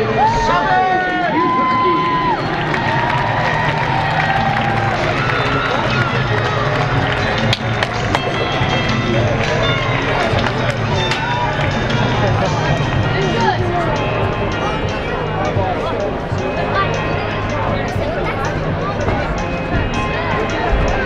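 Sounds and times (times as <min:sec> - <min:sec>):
arena music: 0:00.0 - 0:21.0
crowd chatter: 0:00.0 - 0:21.0
hockey sticks and pucks clacking: 0:06.0 - 0:11.4.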